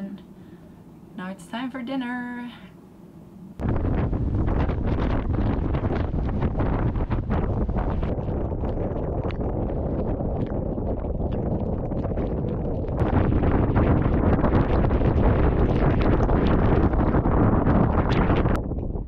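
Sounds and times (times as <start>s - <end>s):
wind blasting across microphone: 3.5s - 19.0s.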